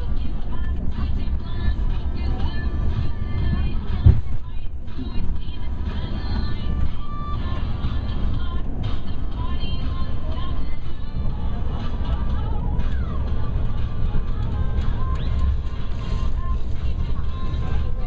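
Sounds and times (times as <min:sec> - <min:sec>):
train rumbling inside carriage: 0:00.0 - 0:18.0
thump: 0:04.0 - 0:04.4.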